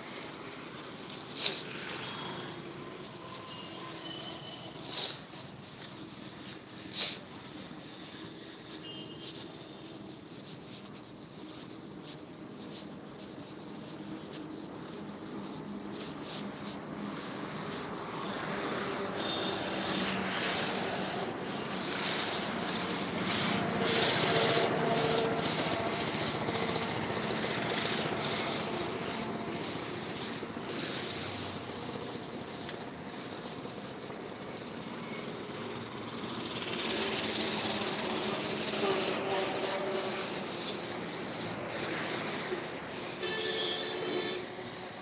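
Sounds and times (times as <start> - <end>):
vehicle and road noise: 0.0 - 45.0.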